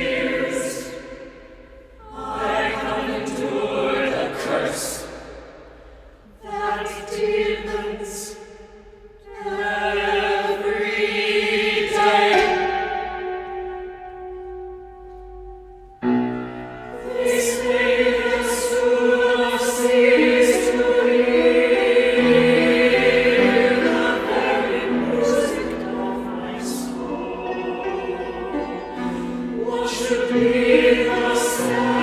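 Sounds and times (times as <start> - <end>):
choir singing loudly: 0.0 - 5.5, 6.4 - 8.4, 9.2 - 14.2, 16.8 - 32.0.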